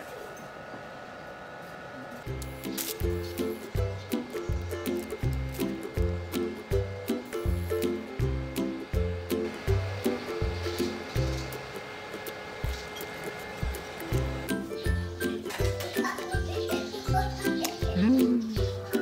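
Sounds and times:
music with steady beat: 2.4s - 19.0s.

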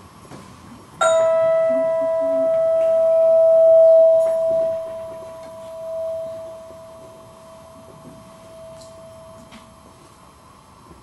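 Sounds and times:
bell-like metal note ringing: 1.0s - 9.6s.

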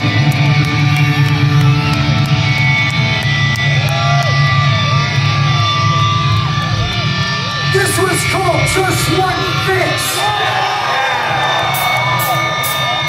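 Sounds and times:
distorted electric guitars droning: 0.0s - 13.0s.

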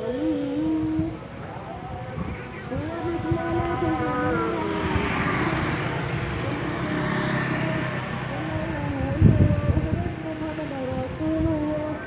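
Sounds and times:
passing rush: 0.9s - 11.2s
small motorcycle engine running: 3.4s - 10.0s.

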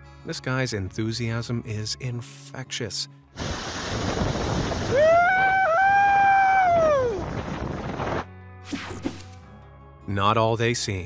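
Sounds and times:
wind rushing over microphone: 3.4s - 8.3s
man whooping: 4.9s - 7.3s.

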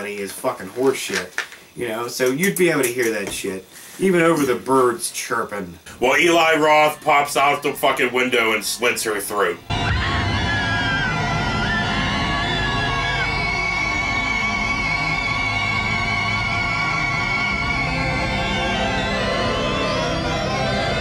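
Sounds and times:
eerie horror film score: 6.3s - 21.0s.

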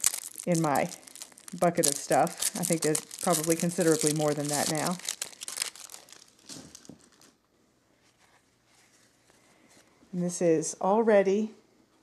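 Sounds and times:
plastic wrapping crinkling: 0.0s - 8.9s
tape rustling: 0.0s - 9.9s.

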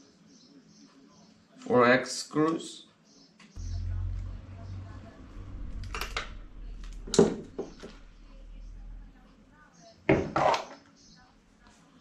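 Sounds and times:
low steady hum: 3.6s - 9.8s.

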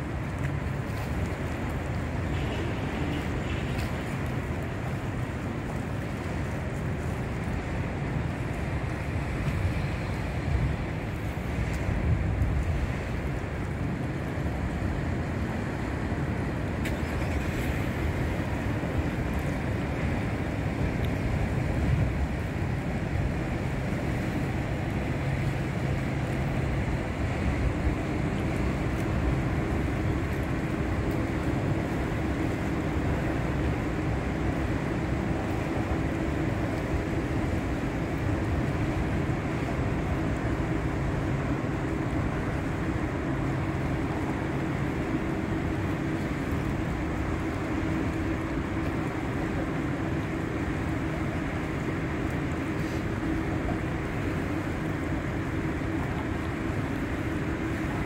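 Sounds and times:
ship engine rumble and drone: 0.0s - 58.0s.

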